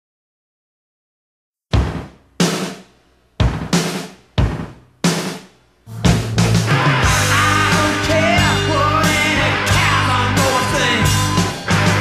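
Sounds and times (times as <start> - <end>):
drum and chord hits: 3.4 - 12.0
rock band playing: 3.4 - 12.0.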